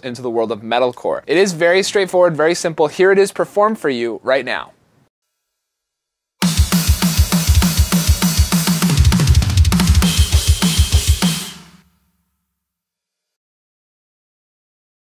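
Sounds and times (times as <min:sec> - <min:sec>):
heavy kick drum hits: 0:06.4 - 0:11.4
drum kit playing fast fill: 0:06.4 - 0:11.9.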